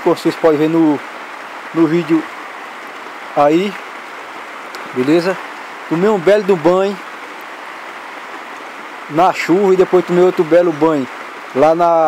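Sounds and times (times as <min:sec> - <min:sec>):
heavy rain: 0:00.0 - 0:12.0.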